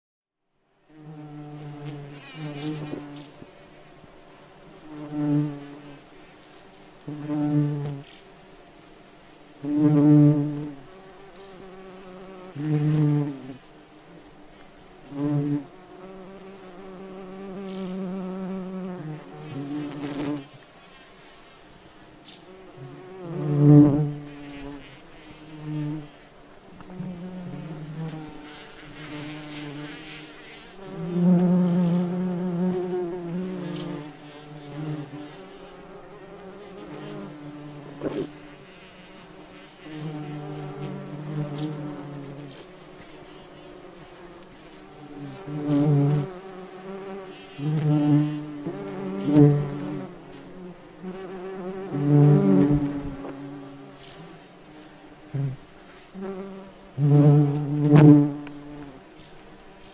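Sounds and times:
beetles buzzing in flight: 1.0s - 8.7s, 9.6s - 59.9s.

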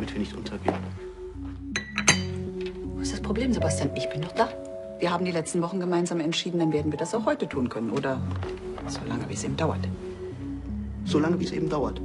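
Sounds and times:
soft background music: 0.0s - 12.0s
cup clinking on saucer: 1.7s - 2.4s.

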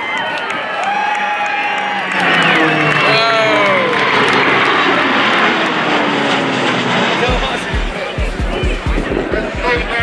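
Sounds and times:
jet engines roaring: 0.0s - 10.0s
music with thumping beat: 7.3s - 10.0s.

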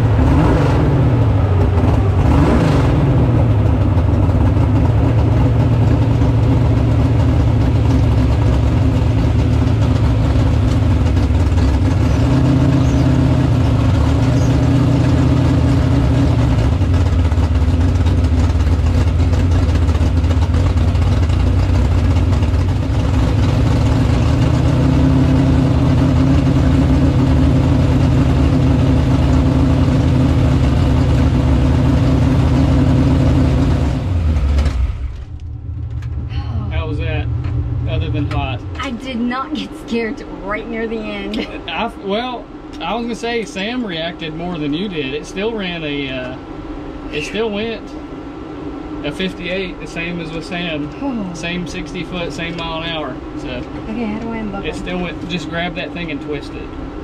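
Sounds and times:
car engine running at low speed: 0.0s - 57.0s.

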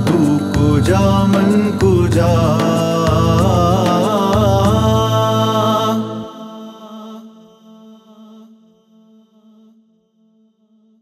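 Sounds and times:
layered voices holding a chord: 0.0s - 9.7s.

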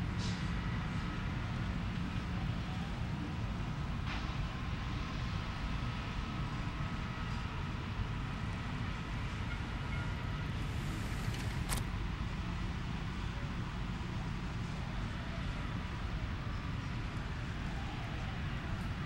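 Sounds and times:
low rumble of city noise: 0.0s - 19.0s.

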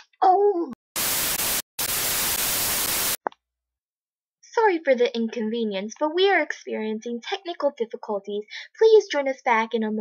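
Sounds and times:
static white noise hiss: 1.0s - 3.2s.

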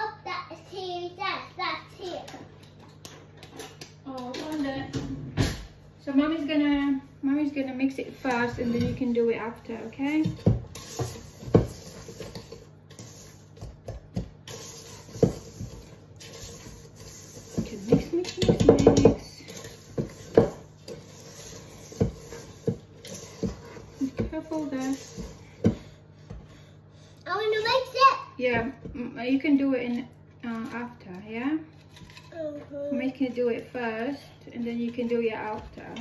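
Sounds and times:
fork mixing batter in metal bowl: 1.8s - 4.8s, 7.3s - 36.0s.

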